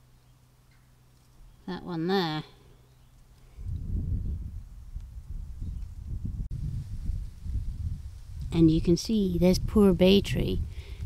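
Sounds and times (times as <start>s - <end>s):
wind buffeting microphone: 3.5s - 11.0s.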